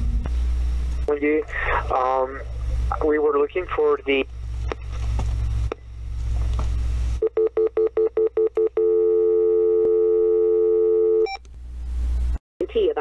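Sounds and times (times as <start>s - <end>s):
telephone line hum: 0.2s - 11.5s
steady dial tone: 7.2s - 11.4s
keypad dialing beeps: 7.3s - 11.4s.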